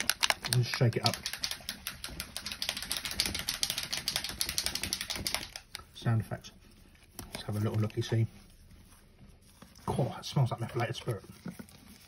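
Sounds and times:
paint pot shaken rattling: 0:00.0 - 0:06.0.

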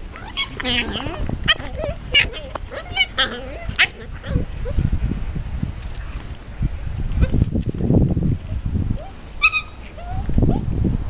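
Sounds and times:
puppy yelping: 0:00.1 - 0:04.8, 0:09.0 - 0:10.6.

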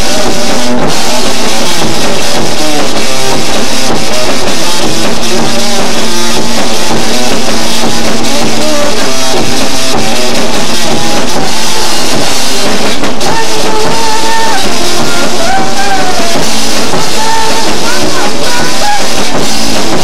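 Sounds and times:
high melodic line: 0:00.0 - 0:20.0
live rock band playing: 0:00.0 - 0:20.0.

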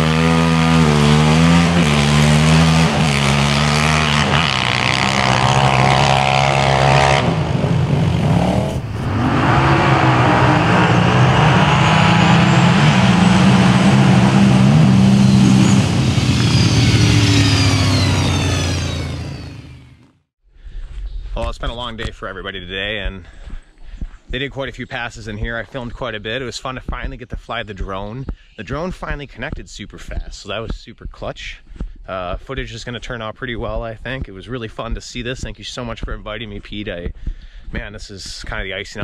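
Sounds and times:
quad engine at full throttle: 0:00.0 - 0:20.2
quad engines revving high: 0:00.0 - 0:20.2.

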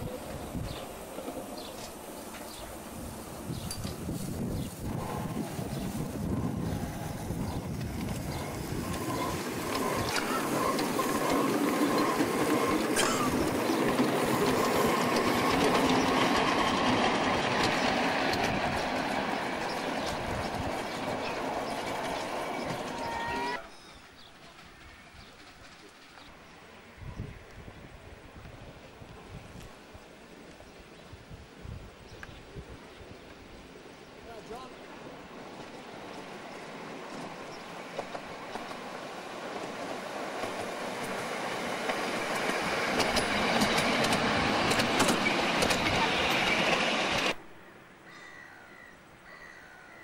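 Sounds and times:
wheels clattering on rails: 0:00.0 - 0:26.6, 0:35.4 - 0:47.4
small steam locomotive: 0:00.0 - 0:30.6, 0:33.7 - 0:47.4.

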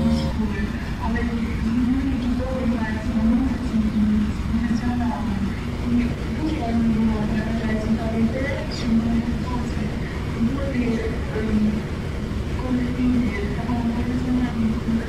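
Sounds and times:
held musical chord: 0:00.0 - 0:00.5
person speaking in low wavering tone: 0:00.0 - 0:00.6
steady low rumble: 0:00.0 - 0:15.0.

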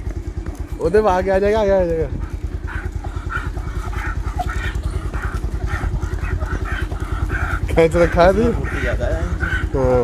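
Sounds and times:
motorcycle engine running: 0:00.0 - 0:10.0
dog panting: 0:01.0 - 0:10.0.

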